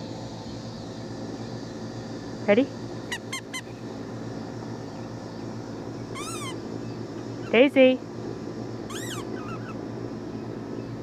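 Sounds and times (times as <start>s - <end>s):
steady background hum: 0.0s - 11.0s
puppy whining: 6.2s - 6.6s, 8.9s - 9.8s
puppy yipping: 6.2s - 6.6s, 8.9s - 9.8s.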